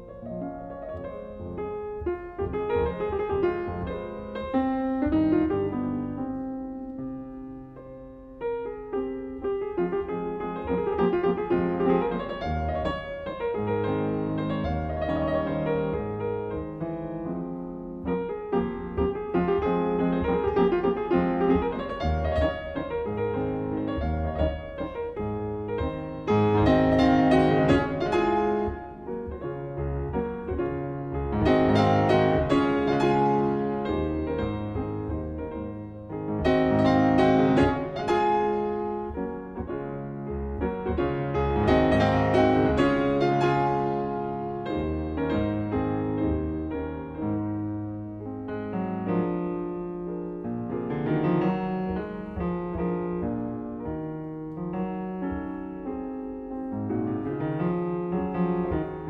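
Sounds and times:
solo classical piano piece: 0.0 - 59.0.

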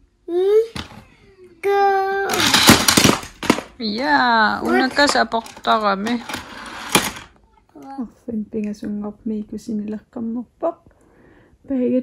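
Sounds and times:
toy cars rattling down plastic ramp: 2.3 - 7.3.

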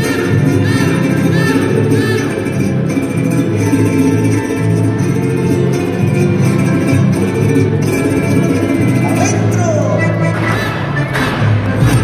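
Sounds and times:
folk music with plucked strings: 0.0 - 12.0.

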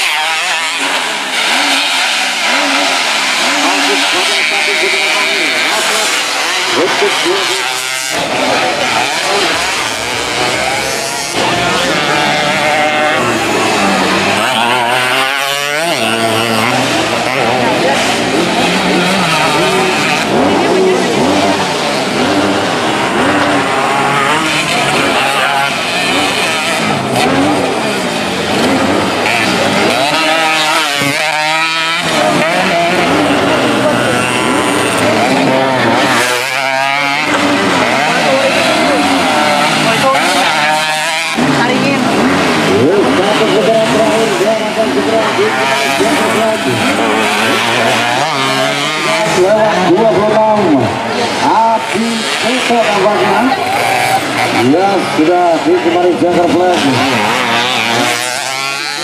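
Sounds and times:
motorcycle engines revving: 0.0 - 59.0.

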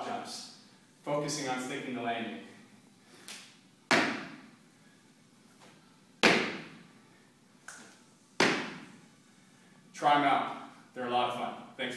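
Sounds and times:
heavy landing thuds: 3.9 - 4.4, 6.2 - 6.8, 8.4 - 8.9.

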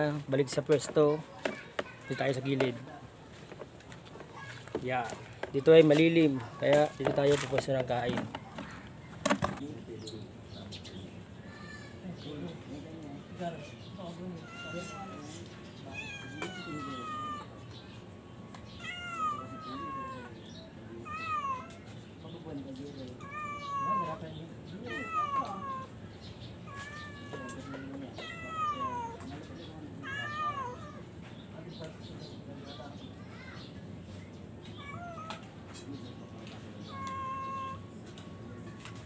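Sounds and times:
cat meowing: 14.3 - 17.6, 18.7 - 21.8, 23.2 - 24.2, 24.8 - 26.0, 26.6 - 29.4, 30.0 - 31.1, 34.7 - 35.6, 36.2 - 37.9.

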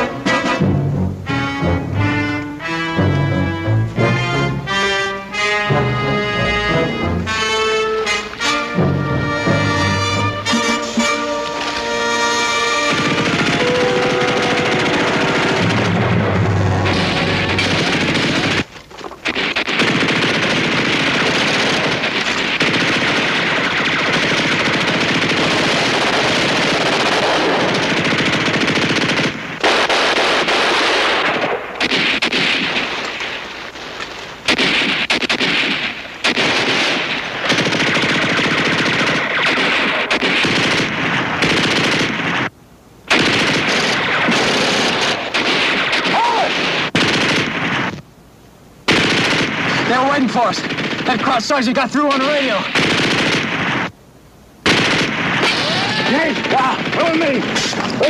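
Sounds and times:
orchestral music: 0.0 - 18.5
machine-gun fire: 12.7 - 33.8, 34.4 - 42.5, 43.1 - 48.0, 48.9 - 54.0, 54.6 - 58.0.

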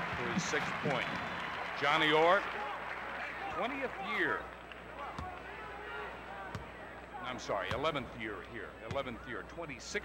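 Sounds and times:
basketball bouncing on court: 7.7 - 8.0, 8.8 - 9.2.

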